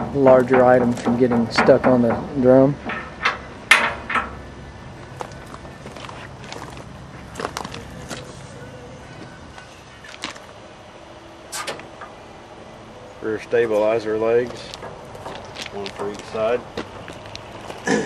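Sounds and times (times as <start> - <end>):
low steady background noise: 0.0 - 18.0.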